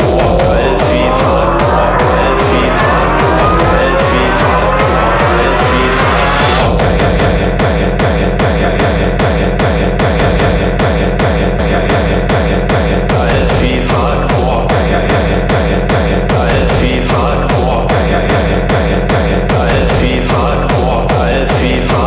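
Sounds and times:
rising synth sweep: 0:00.0 - 0:06.9
hardcore techno music: 0:00.0 - 0:22.0.

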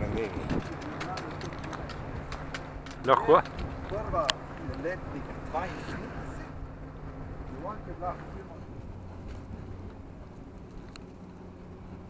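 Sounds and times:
wind on microphone: 0:00.0 - 0:06.6, 0:08.1 - 0:12.0.

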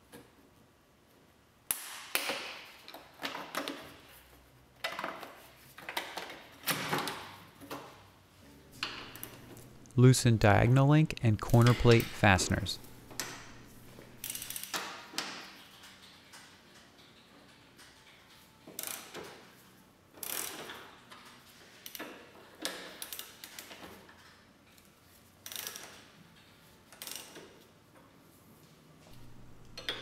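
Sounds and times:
socket ratchet clicking: 0:12.8 - 0:14.8.

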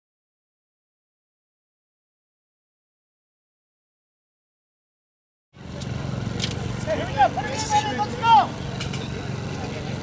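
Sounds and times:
voices shouting calls: 0:05.9 - 0:10.0.

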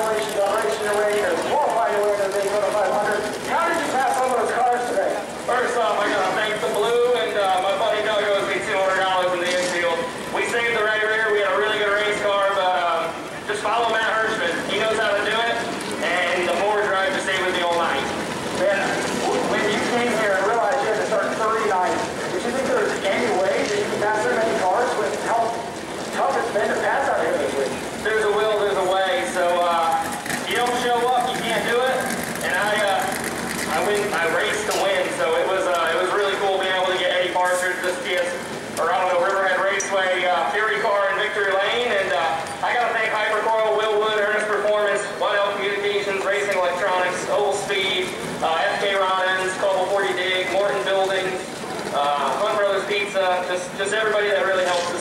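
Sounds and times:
man talking into a microphone: 0:00.0 - 0:55.0.

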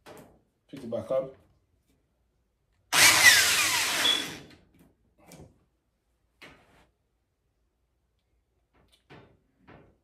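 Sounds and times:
electric drill driving screw into metal: 0:02.9 - 0:04.5.

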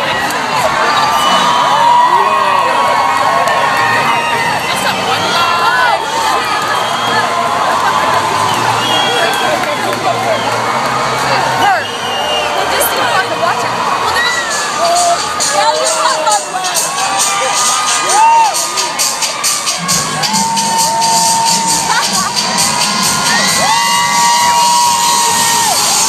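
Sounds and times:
crowd cheering and screaming: 0:00.0 - 0:26.0
music with low beat: 0:16.6 - 0:26.0
high shrill whoops: 0:23.4 - 0:25.9.

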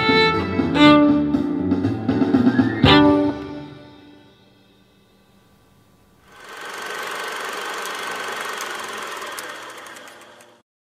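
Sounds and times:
film projector whirring and clattering: 0:06.3 - 0:10.6.

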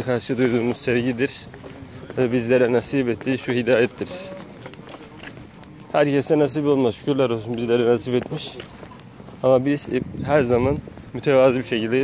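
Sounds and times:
man speaking: 0:00.0 - 0:04.6, 0:05.9 - 0:08.7, 0:09.4 - 0:12.0
faint background noise: 0:00.0 - 0:12.0.

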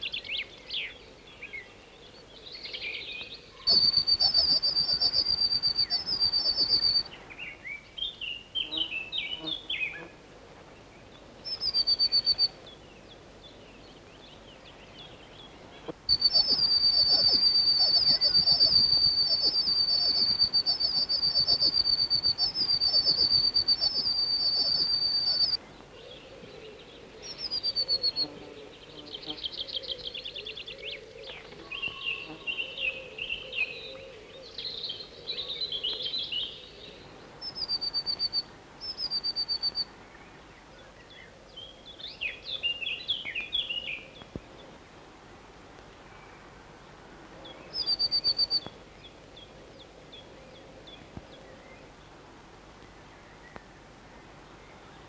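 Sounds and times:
bird calls and twittering: 0:00.0 - 0:44.8, 0:47.4 - 0:55.0
high-pitched bird trilling: 0:16.1 - 0:25.6.

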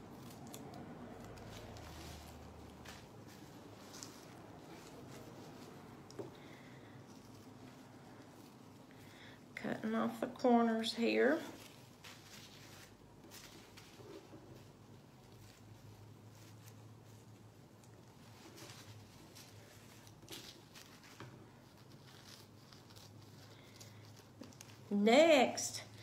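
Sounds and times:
scissors cutting plastic bag: 0:00.0 - 0:05.2.

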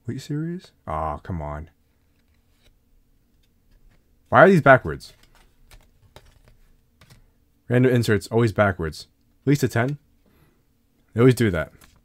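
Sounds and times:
trading cards flipped and rustling: 0:01.9 - 0:04.0, 0:04.8 - 0:07.3, 0:11.6 - 0:12.0.

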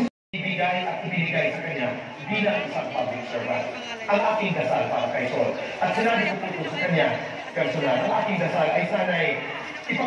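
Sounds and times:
person speaking over loudspeakers: 0:00.0 - 0:10.0.

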